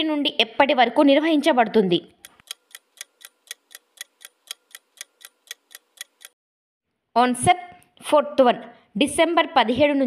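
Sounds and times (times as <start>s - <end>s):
countdown timer ticking: 2.1s - 6.4s.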